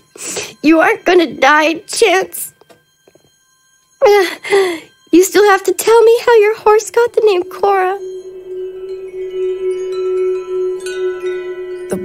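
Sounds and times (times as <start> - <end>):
high chimes: 0.0 - 12.0
shimmering chime-like ringing: 0.0 - 12.0
steady held drone: 5.8 - 12.0.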